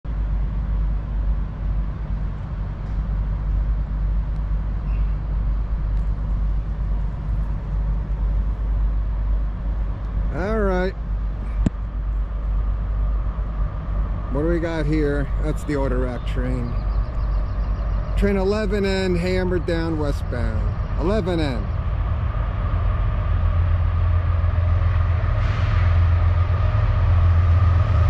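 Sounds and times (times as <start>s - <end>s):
low outdoor rumble: 0.0s - 28.0s.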